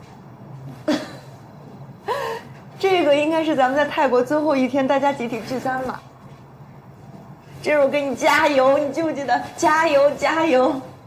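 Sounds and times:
woman speaking: 2.8 - 6.1, 7.6 - 11.0.

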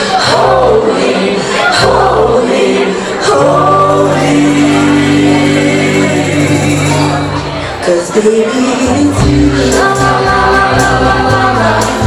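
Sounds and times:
women singing: 0.0 - 7.2, 7.8 - 12.0
steady bass line: 3.3 - 7.8, 8.9 - 12.0
live rock band: 4.5 - 12.0.

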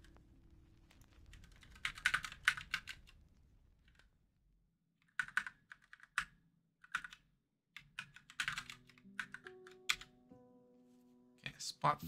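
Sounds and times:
keyboard typing: 1.5 - 3.1, 5.0 - 7.2, 7.8 - 10.2
faint background music: 8.0 - 12.0.

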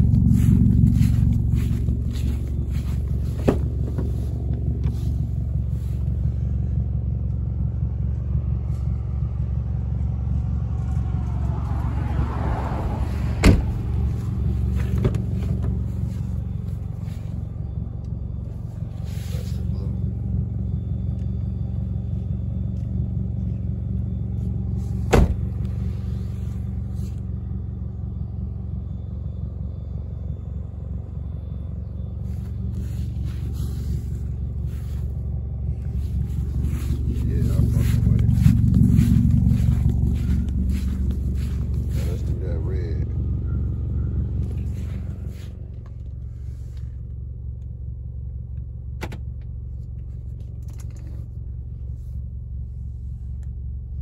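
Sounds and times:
car engine idling: 0.0 - 54.0.

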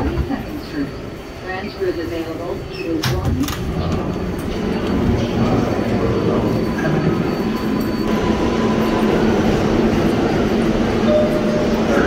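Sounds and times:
subway train rumble: 0.0 - 12.0.

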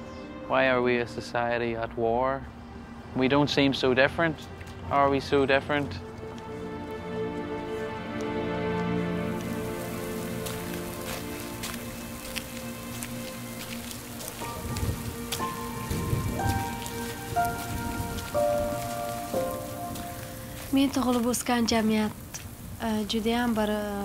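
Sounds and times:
soft background music: 0.0 - 24.0
rain falling on street: 4.4 - 24.0.

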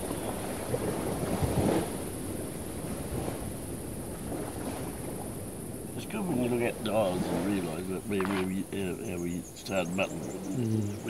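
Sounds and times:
insects chirring: 0.0 - 11.0
man talking: 6.0 - 11.0.

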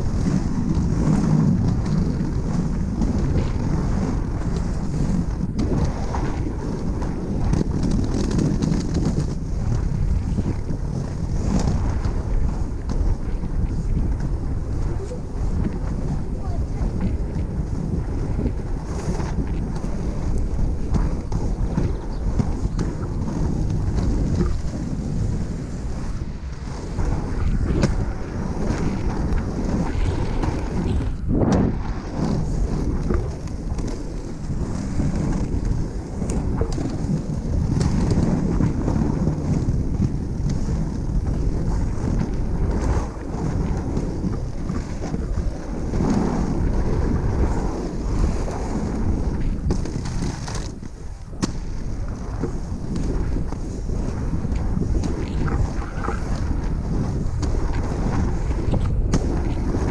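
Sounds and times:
inline skates rolling on asphalt: 0.0 - 59.9
wind buffeting microphone: 0.0 - 59.9.

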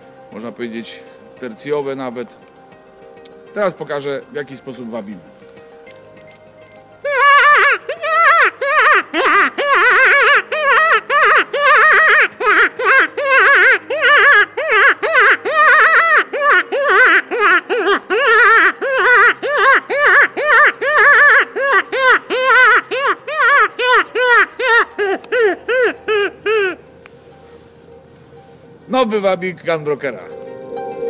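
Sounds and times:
predator call wavering wails: 5.9 - 26.8.

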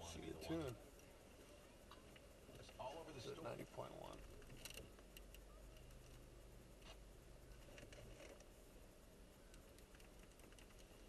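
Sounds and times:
low rumble of car engine and road: 0.0 - 11.0
faint ticks: 9.5 - 11.0.

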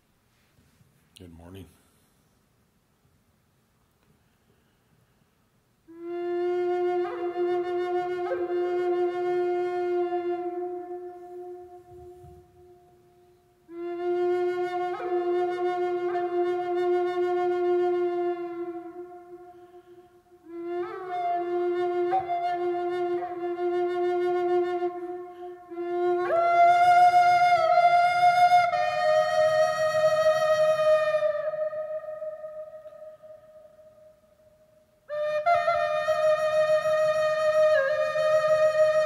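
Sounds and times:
wooden flute long note: 5.9 - 39.0.

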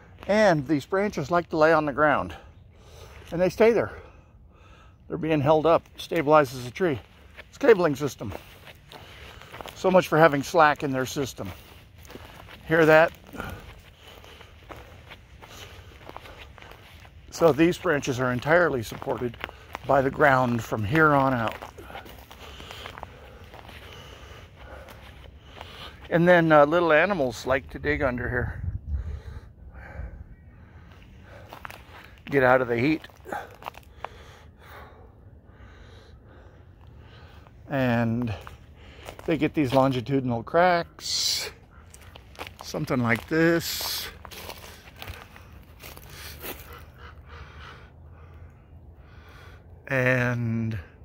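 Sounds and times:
footsteps on dry leaves: 5.4 - 27.7, 30.8 - 34.3, 36.8 - 40.2, 41.2 - 47.5.

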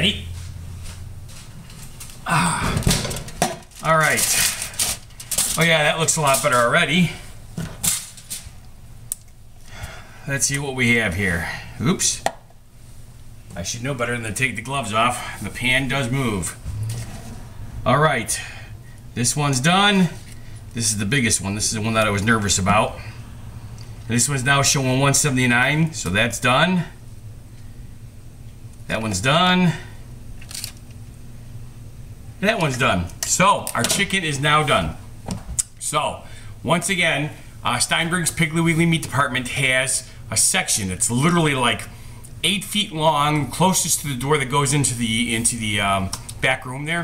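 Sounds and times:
steady low hum: 0.0 - 47.0
rustle of foil: 3.7 - 6.8, 7.8 - 8.6.

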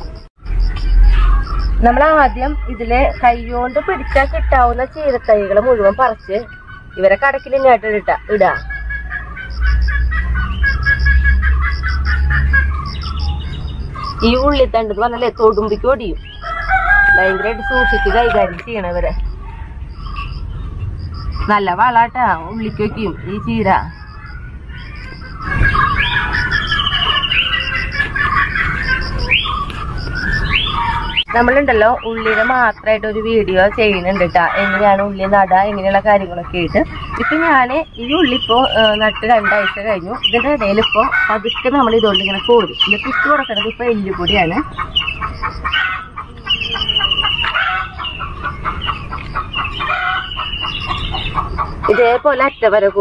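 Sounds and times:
rising whistled bird calls: 0.0 - 4.4, 5.0 - 32.7, 40.2 - 52.8
birds chirping: 0.0 - 53.0.

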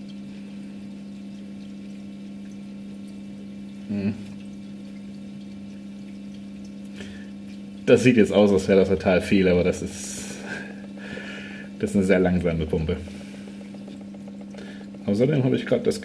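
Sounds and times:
dosing pump humming: 0.0 - 16.0
short vocal sound: 3.9 - 4.3.

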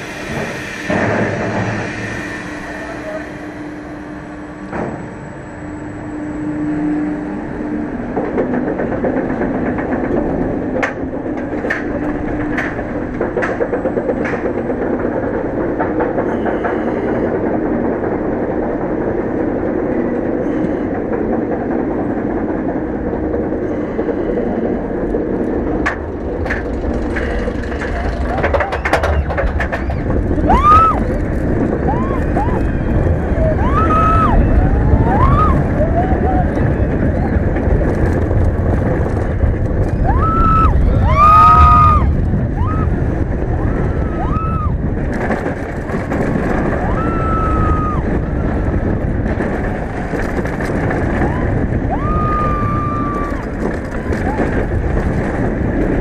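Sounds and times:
roller coaster chain lift rattling: 0.0 - 56.0
wind noise on microphone: 5.8 - 56.0
riders screaming: 27.9 - 37.3, 40.0 - 44.9, 46.5 - 48.3, 51.0 - 55.0.

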